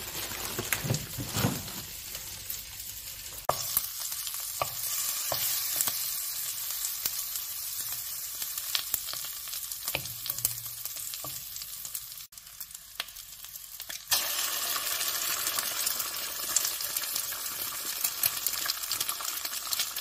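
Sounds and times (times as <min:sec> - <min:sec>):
sausages sizzling in a frying pan: 0:00.0 - 0:20.0.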